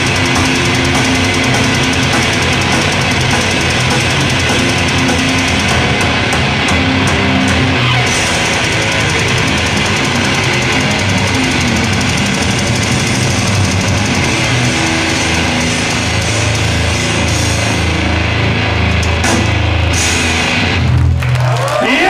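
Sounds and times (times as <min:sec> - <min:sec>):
metal band playing live: 0:00.0 - 0:22.0.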